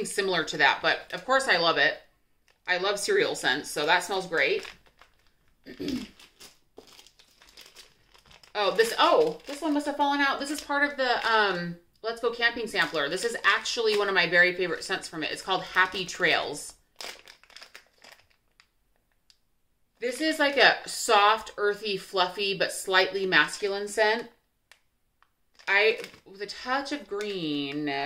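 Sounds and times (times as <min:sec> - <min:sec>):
plastic packaging crinkling: 0:02.4 - 0:11.5, 0:12.6 - 0:19.4, 0:24.7 - 0:28.0.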